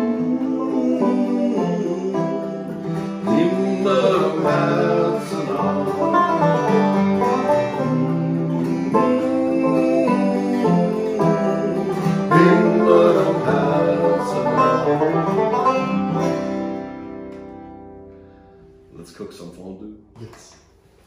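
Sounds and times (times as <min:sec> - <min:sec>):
banjo picking: 0:00.0 - 0:19.0
acoustic guitar chords: 0:00.0 - 0:19.3.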